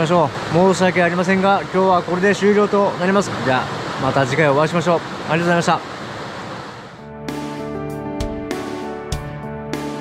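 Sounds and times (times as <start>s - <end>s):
mountain stream rushing: 0.0s - 7.7s
background music with held notes: 7.0s - 10.0s.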